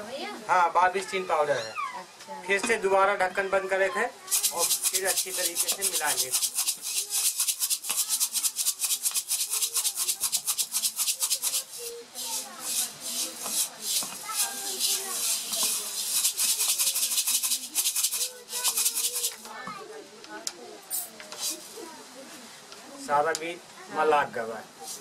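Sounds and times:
seeds rattling in shaken clay pot: 4.3 - 19.6, 20.9 - 21.8.

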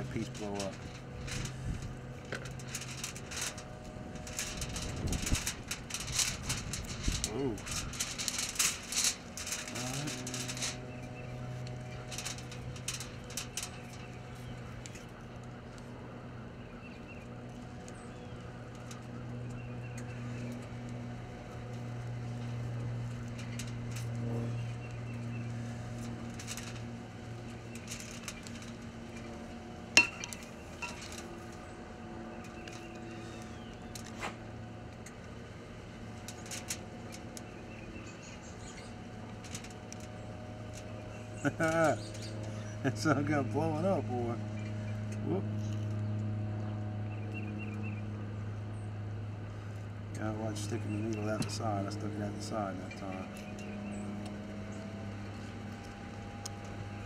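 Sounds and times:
foil crinkling: 0.0 - 15.5, 21.6 - 29.2, 36.2 - 37.4
steady low hum: 0.0 - 57.0.

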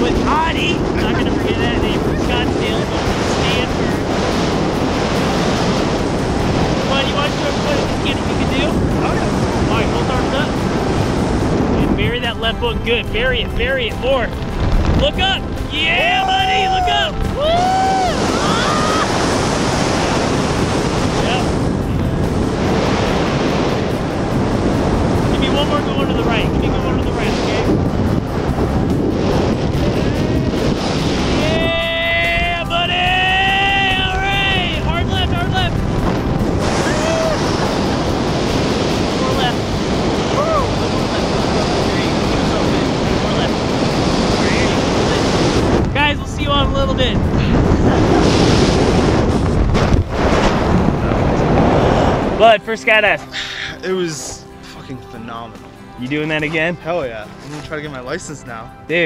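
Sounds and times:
wind buffeting microphone: 0.0 - 53.3
person whooping yell: 15.9 - 19.2, 31.4 - 34.3, 36.8 - 37.4, 40.3 - 40.7.

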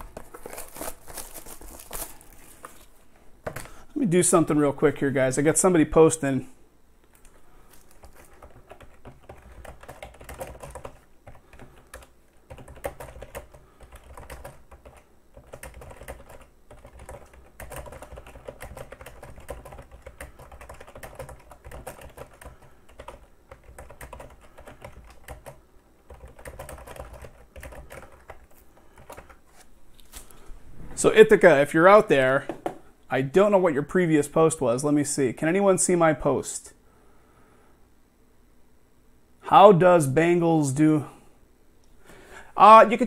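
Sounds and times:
typing on computer keyboard: 8.0 - 29.4.

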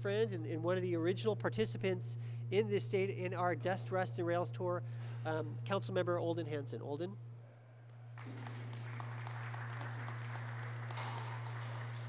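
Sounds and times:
steady low hum: 0.0 - 12.0
audience applauding: 8.1 - 12.0.

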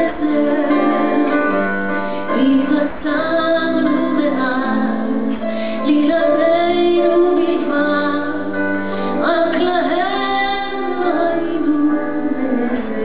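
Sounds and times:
woman singing slow song: 0.0 - 13.0.

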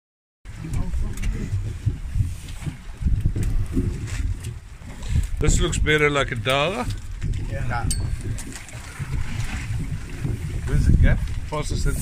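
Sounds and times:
boat at sea: 0.5 - 12.0
wind on microphone: 0.5 - 12.0.

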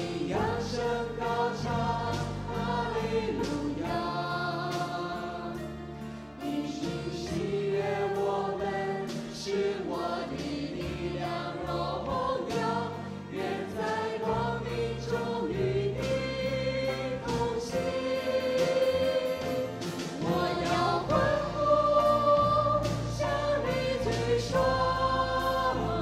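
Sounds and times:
band of piano guitar and drums: 0.0 - 26.0
congregation singing: 0.0 - 26.0.

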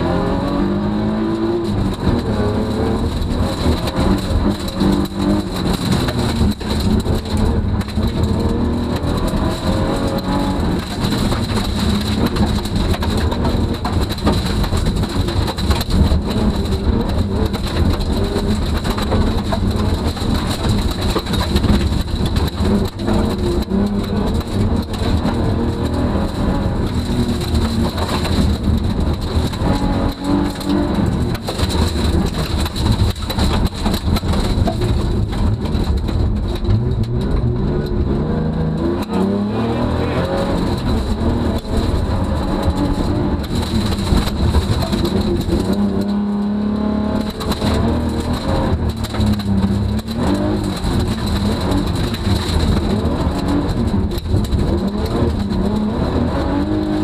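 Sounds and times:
car engine revving hard: 0.0 - 35.8, 36.6 - 57.0
gravel rattling against underbody: 1.4 - 57.0.

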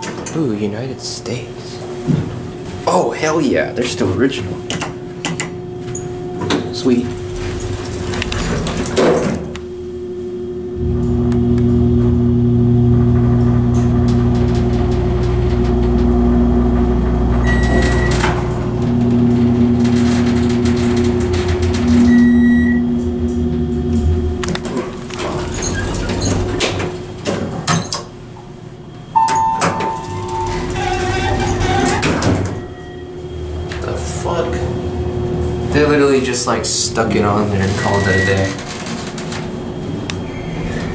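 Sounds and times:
hydraulic elevator drive hum: 0.0 - 40.9
elevator doors knocking and rattling: 3.2 - 9.6, 10.9 - 28.3, 29.2 - 40.9
two-note electronic chime: 29.2 - 30.7.

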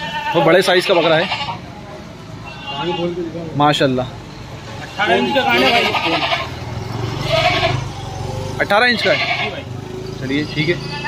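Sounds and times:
goat bleating: 0.0 - 1.8, 4.9 - 7.9, 8.9 - 9.7, 10.8 - 11.0.

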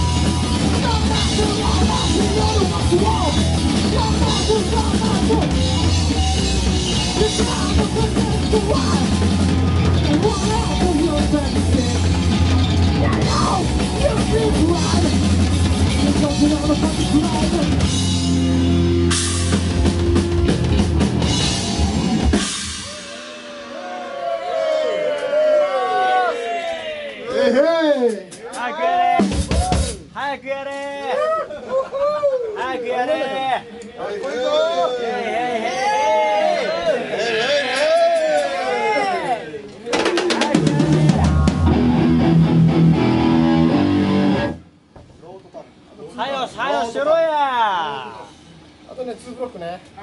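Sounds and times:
hardcore punk band playing: 0.0 - 25.0, 28.3 - 30.2, 39.9 - 44.9.

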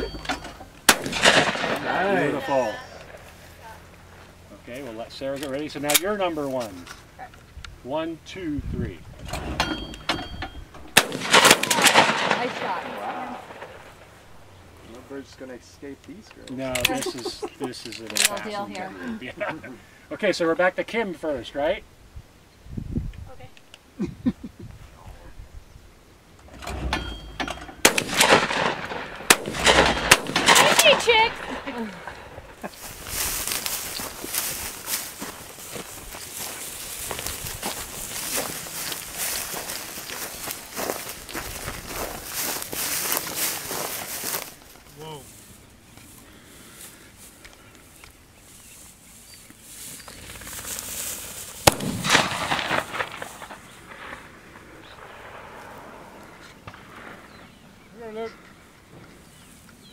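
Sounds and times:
shotgun shots: 0.8 - 2.3, 10.9 - 14.2, 27.8 - 32.6, 51.6 - 54.3
people's voices: 1.5 - 9.2, 14.8 - 20.8, 29.6 - 34.6.

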